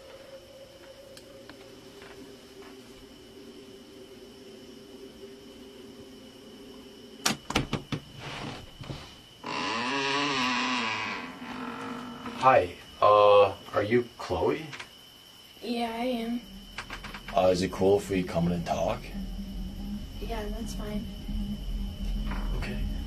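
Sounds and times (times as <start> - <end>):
low hum: 0.0 - 13.6, 15.6 - 23.0
door hinges creaking: 7.2 - 12.6, 16.7 - 17.6.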